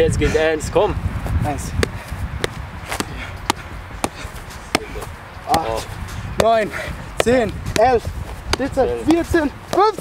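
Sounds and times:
football juggled dull thuds: 1.7 - 10.0.

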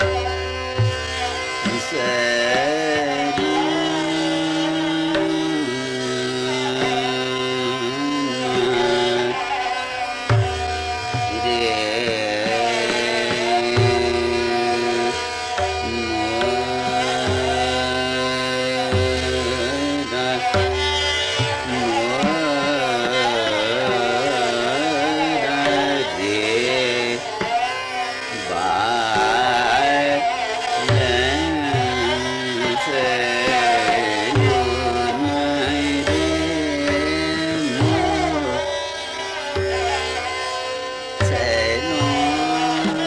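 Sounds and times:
man singing classical style: 0.0 - 10.0, 10.6 - 38.8, 41.2 - 43.0
instrumental accompaniment: 0.0 - 43.0
tabla strokes: 0.0 - 43.0.

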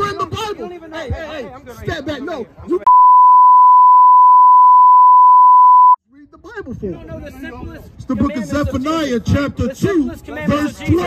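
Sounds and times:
censor bleep: 2.9 - 6.0.

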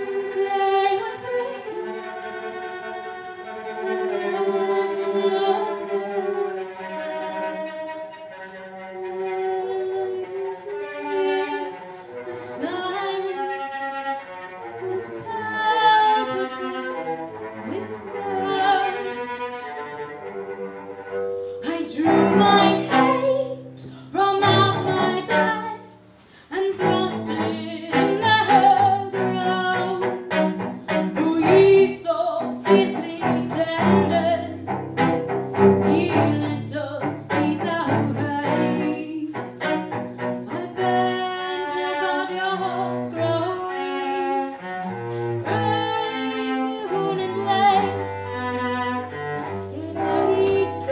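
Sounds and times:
bowed cello playing: 0.0 - 50.9
woman singing: 0.1 - 2.1, 4.0 - 6.6, 12.3 - 13.8, 14.8 - 19.2, 21.6 - 34.6, 35.8 - 39.7, 40.5 - 44.5, 45.4 - 48.0, 49.7 - 50.9.

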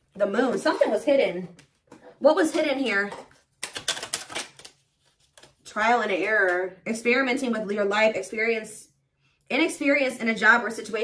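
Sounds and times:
cards being shuffled: 3.3 - 5.6.

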